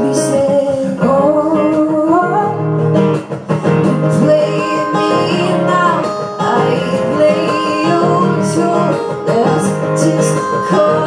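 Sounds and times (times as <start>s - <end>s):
woman singing: 0.0s - 2.9s, 3.5s - 11.0s
strummed acoustic guitars: 0.0s - 11.0s.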